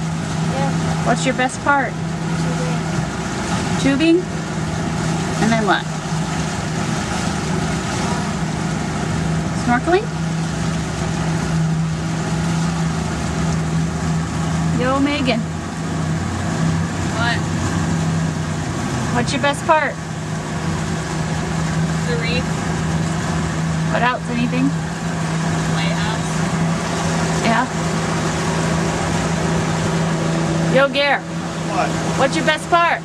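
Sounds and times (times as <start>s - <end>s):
boat engine humming: 0.0s - 33.0s
wind and water rushing: 0.0s - 33.0s.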